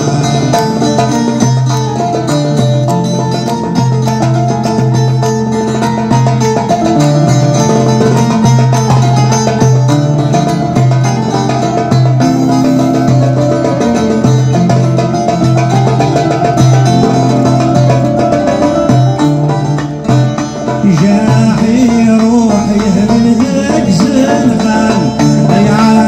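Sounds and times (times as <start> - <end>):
amplified mandole melody: 0.0 - 26.0
low bass notes: 0.0 - 26.0.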